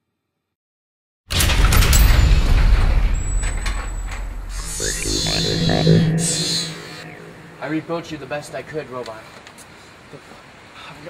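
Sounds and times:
short synth notes: 4.5 - 9.0
steady low hum: 4.5 - 9.3.

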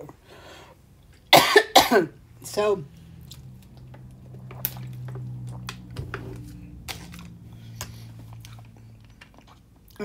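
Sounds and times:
woman coughing: 1.3 - 2.2.

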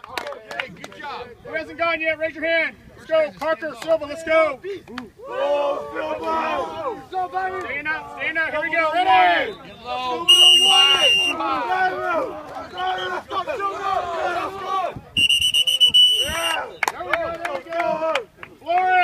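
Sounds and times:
players shouting and cheering: 0.6 - 19.0
shrill whistle blasts: 9.4 - 11.4, 15.2 - 16.9.

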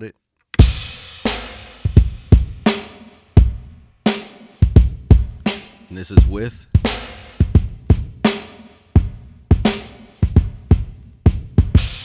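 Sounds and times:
hip-hop drum beat: 0.6 - 12.0.

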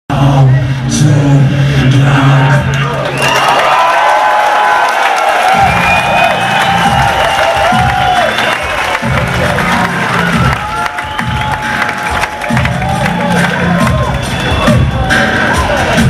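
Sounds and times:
audience cheering and whooping: 3.0 - 16.0
electronic rock song: 5.4 - 16.0.

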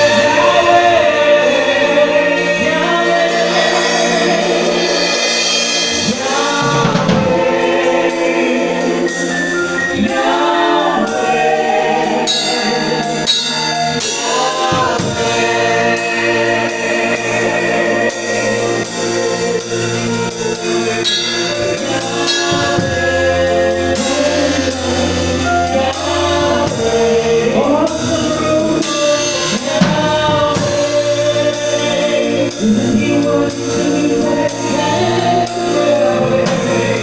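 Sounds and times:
drum kit beat: 0.0 - 37.0
gospel singing: 0.0 - 37.0
keyboard: 0.0 - 37.0.

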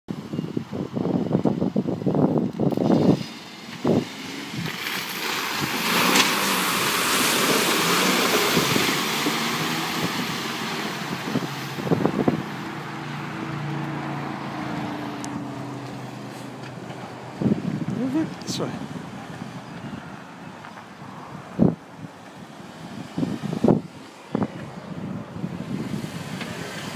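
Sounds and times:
engine working under load: 2.2 - 26.9
tyres splashing through mud: 2.6 - 19.6, 25.6 - 26.9.

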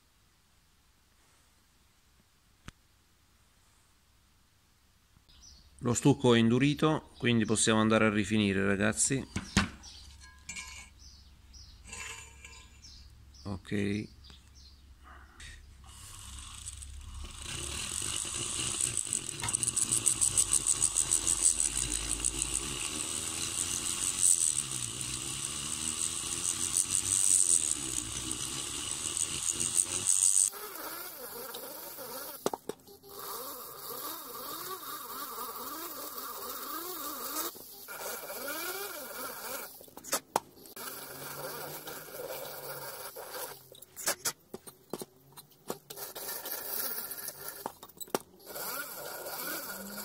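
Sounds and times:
rotary grinder whining: 11.8 - 13.0, 15.8 - 50.0.

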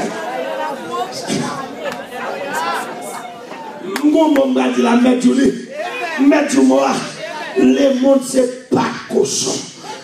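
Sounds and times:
voices talking over one another: 0.0 - 10.0.

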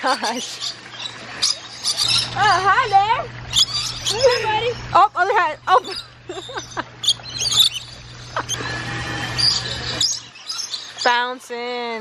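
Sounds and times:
lorikeets chirping: 0.0 - 11.4
steady low hum: 0.0 - 12.0.

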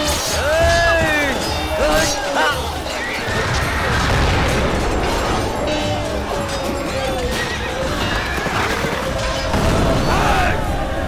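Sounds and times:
film battle music: 0.0 - 11.0
galloping hoofbeats: 5.9 - 9.6.

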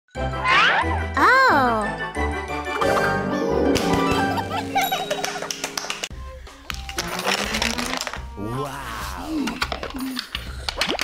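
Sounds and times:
chiming tones: 4.1 - 6.0.

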